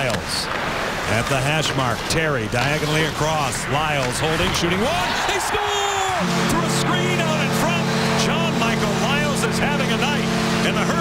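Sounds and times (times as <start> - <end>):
crowd: 3.2 - 7.0
goal horn chord: 6.1 - 11.0.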